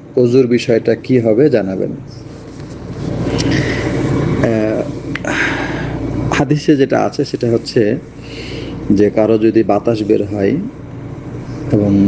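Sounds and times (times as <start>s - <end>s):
low background rumble and hiss: 0.0s - 12.0s.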